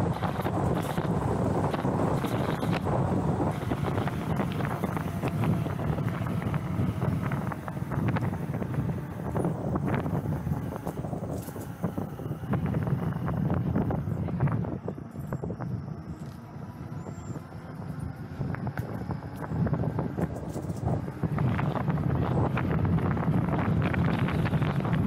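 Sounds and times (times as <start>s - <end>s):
wind buffeting microphone: 0.0s - 25.0s
small clicks: 10.7s - 11.9s, 16.2s - 16.5s.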